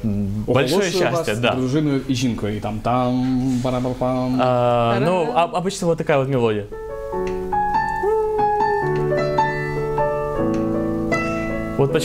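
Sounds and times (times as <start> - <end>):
digital piano slow melody: 6.7 - 12.0.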